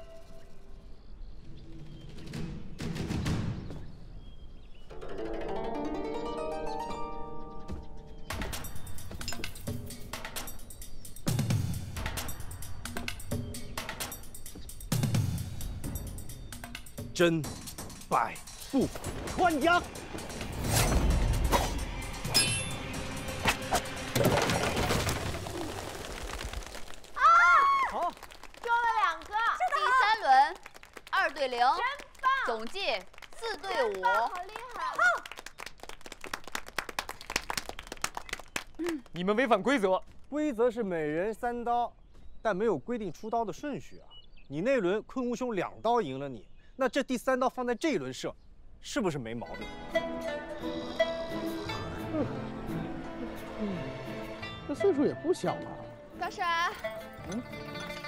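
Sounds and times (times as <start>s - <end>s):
background score music: 0.0s - 25.3s, 49.4s - 58.0s
plucked string notes: 4.9s - 7.9s
metallic ping: 22.3s - 22.8s.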